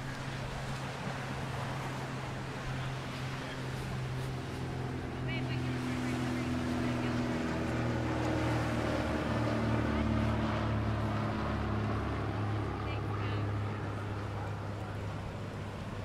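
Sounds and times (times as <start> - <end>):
motorboat engine droning: 0.0 - 16.0.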